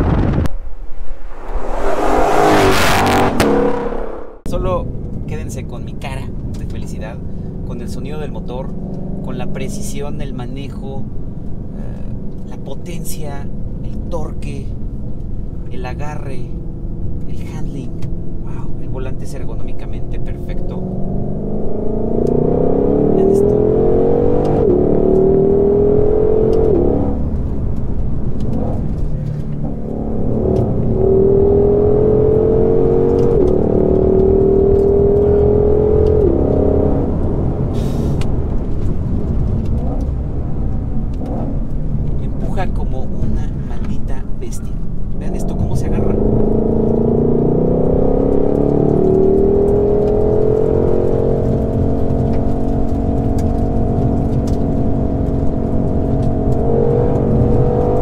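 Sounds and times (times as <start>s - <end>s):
car engine accelerating hard: 1.1s - 13.0s, 16.5s - 44.0s, 44.7s - 58.0s.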